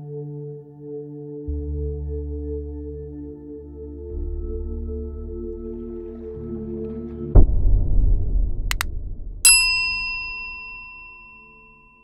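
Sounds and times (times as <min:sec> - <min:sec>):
low rumble: 0:05.2 - 0:10.6
bright bell-like ding: 0:09.5 - 0:12.0.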